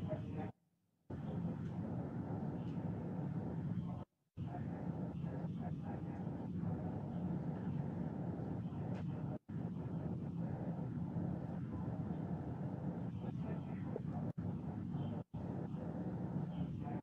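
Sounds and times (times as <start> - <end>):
faint indistinct speech: 0.0 - 17.0
low rumble from speakers: 1.1 - 17.0.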